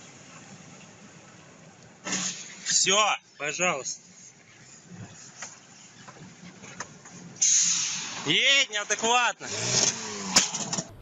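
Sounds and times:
road noise inside a car: 0.0 - 11.0
loud steady hiss: 7.4 - 8.8.

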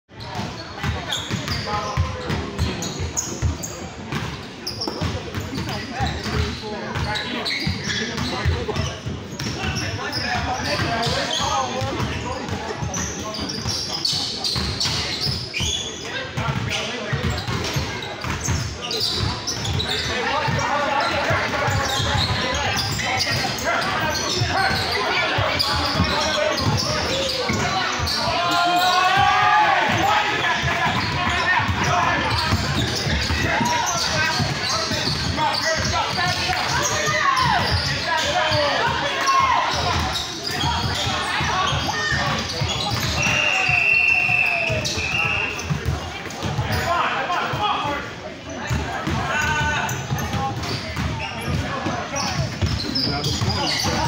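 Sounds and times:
chatter and calls in a hall: 0.1 - 54.0
basketball bouncing on court: 0.4 - 9.8, 16.4 - 28.2, 29.2 - 39.0, 39.7 - 43.4, 44.7 - 46.8, 48.7 - 54.0.

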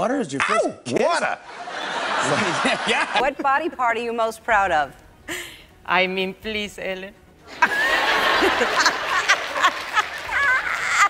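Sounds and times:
women laughing: 1.7 - 3.4, 7.5 - 11.0.

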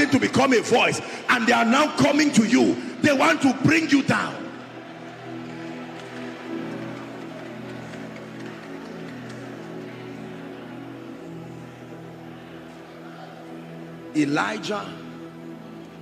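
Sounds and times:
soft sustained chord music: 0.0 - 16.0.

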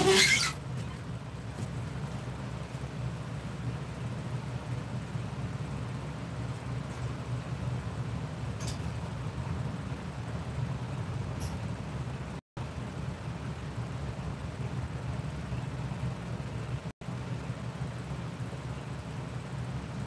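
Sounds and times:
fans humming: 0.0 - 20.0.

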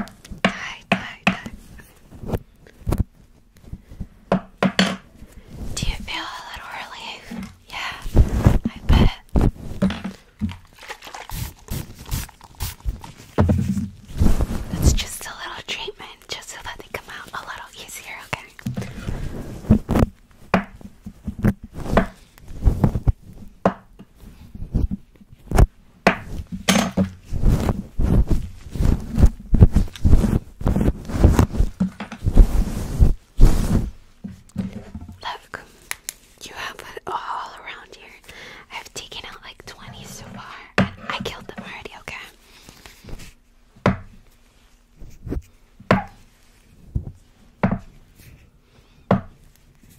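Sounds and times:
person whispering: 0.4 - 1.6, 5.7 - 9.4, 14.7 - 18.6, 35.2 - 35.8, 36.4 - 42.4
hairbrush tapping microphone windscreen: 7.3 - 15.4, 24.7 - 35.2.

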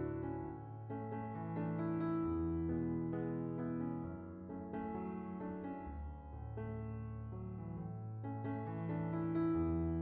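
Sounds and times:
soft piano background music: 0.0 - 10.0.

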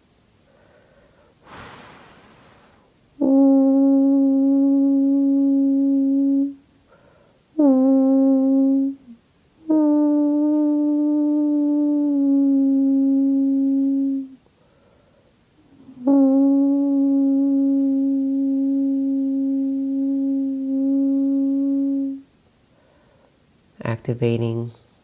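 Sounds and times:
person breathing: 0.4 - 2.9, 6.9 - 7.4, 14.6 - 15.4, 22.7 - 23.4.

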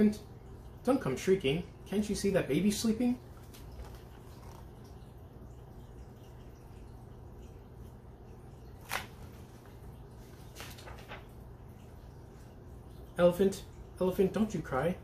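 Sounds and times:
faint soft noises: 1.7 - 14.1.

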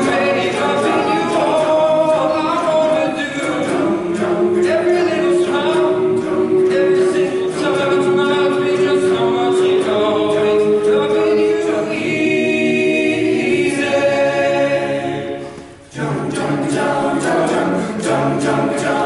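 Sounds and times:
men's choir singing a cappella: 0.0 - 19.0.

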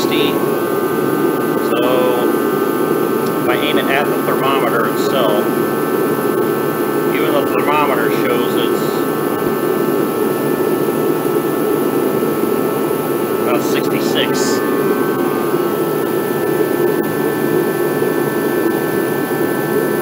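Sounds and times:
faint steady whine: 0.0 - 20.0
heater burner and fan roar: 0.0 - 20.0.

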